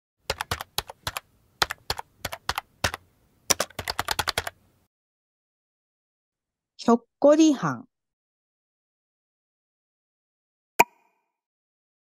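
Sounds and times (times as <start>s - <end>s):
keyboard typing clicks: 0.3s - 4.6s.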